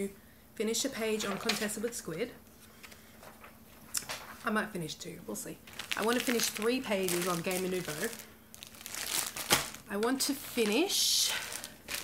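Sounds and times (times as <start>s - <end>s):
plastic bag crinkling: 5.6s - 12.0s.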